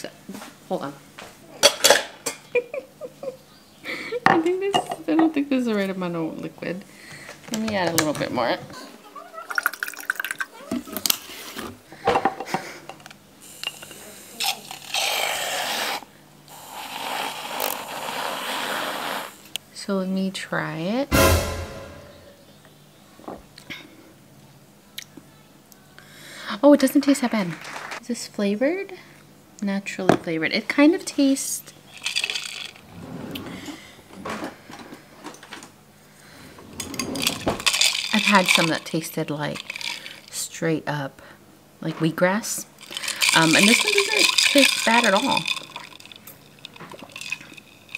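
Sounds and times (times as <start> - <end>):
water pouring into glass jar: 9.5 - 10.5, 42.8 - 47.9.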